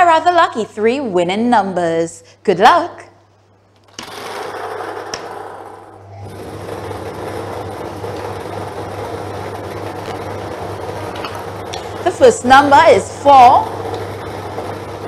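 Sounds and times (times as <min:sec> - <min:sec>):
motor hum: 0:03.9 - 0:15.0.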